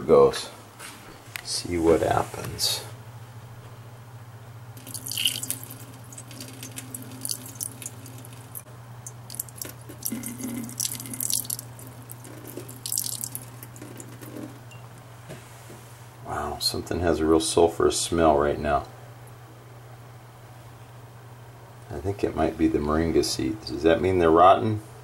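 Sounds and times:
water pouring into steel sink: 0:04.8 - 0:14.6
water dripping near drain: 0:04.8 - 0:14.8.

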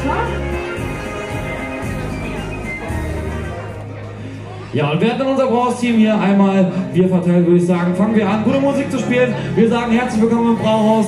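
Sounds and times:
background music with bass line: 0:00.0 - 0:11.0.

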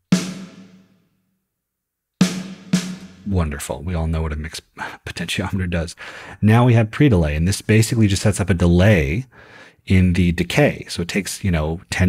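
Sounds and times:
snare drum hit with chamber reverb: 0:00.1 - 0:00.8, 0:02.2 - 0:03.3.

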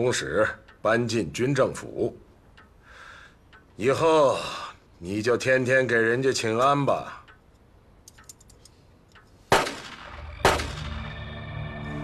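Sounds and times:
gunshots with ringing tail: 0:09.5 - 0:11.2
low sustained music tones: 0:09.8 - 0:12.0.

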